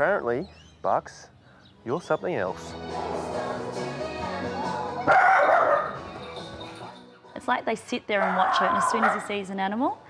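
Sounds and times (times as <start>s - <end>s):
background music: 0.0s - 10.0s
small dog barking: 5.1s - 6.0s, 8.2s - 9.4s.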